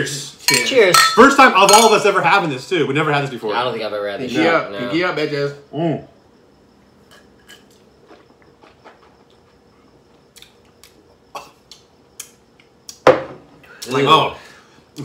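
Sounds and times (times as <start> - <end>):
glasses knocking: 0.5 - 2.0.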